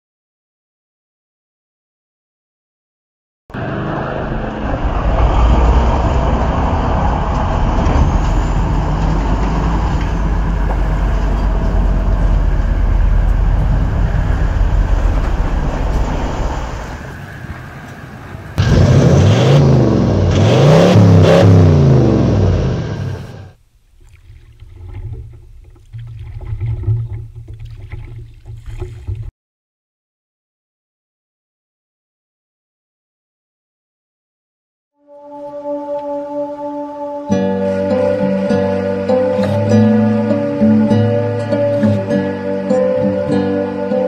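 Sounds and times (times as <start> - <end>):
off-road vehicle engine revving: 3.6 - 23.6.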